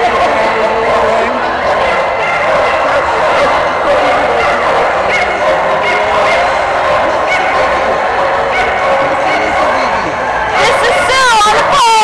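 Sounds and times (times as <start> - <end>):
many dogs barking and yipping: 0.0 - 12.0.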